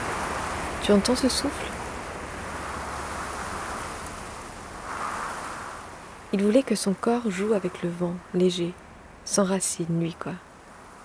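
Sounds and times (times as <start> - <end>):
wind blowing: 0.0 - 11.0.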